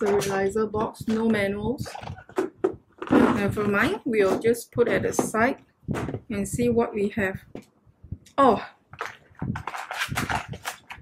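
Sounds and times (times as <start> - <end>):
paper packaging rustling: 8.9 - 11.0.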